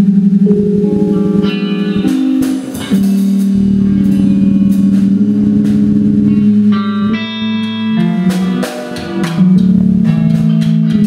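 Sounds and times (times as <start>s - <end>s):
guitar: 0.2s - 11.0s
live band playing: 0.4s - 10.7s.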